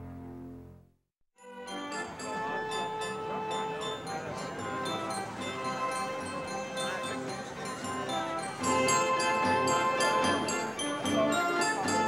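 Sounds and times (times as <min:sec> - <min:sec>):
bell-like notes: 0:01.4 - 0:12.0
carousel organ music: 0:01.4 - 0:12.0.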